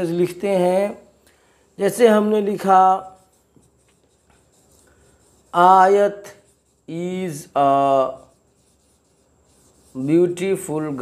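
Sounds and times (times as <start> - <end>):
marker pen scratching on whiteboard: 1.7 - 11.0.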